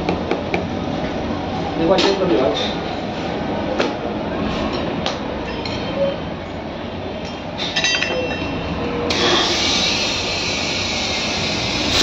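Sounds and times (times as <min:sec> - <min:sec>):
compressed air hissing from hose: 0:09.1 - 0:12.0.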